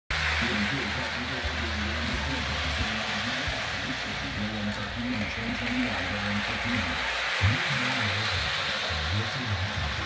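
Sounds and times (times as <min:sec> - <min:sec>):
faint voice or music: 0:00.1 - 0:10.0.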